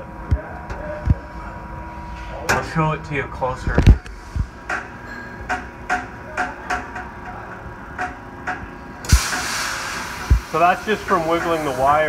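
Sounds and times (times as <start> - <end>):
steady hiss: 9.1 - 12.0.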